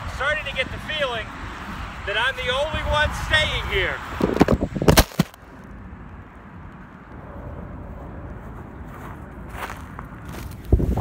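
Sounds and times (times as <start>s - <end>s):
camera handling noise and rumble: 4.2s - 5.4s.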